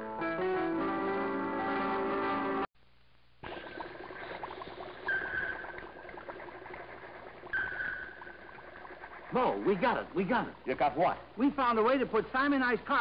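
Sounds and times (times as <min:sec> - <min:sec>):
liquid bubbling and fizzing: 0:03.4 - 0:13.0.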